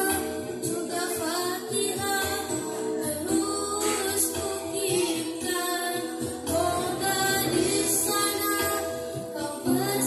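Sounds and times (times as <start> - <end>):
girls singing together: 0.0 - 10.0.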